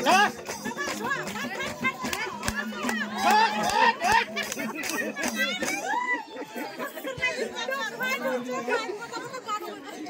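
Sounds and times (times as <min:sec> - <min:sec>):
women chattering: 0:00.0 - 0:10.0.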